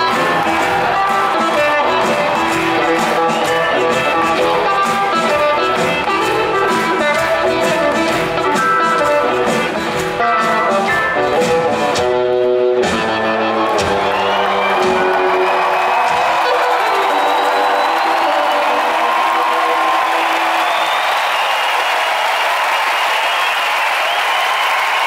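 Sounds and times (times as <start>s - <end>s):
blues rock band playing: 0.0s - 21.4s
crowd cheering and applauding: 0.0s - 25.0s.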